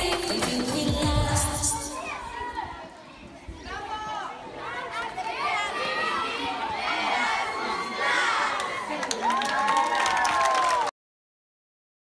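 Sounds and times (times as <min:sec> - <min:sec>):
children cheering and shouting: 0:00.5 - 0:10.9.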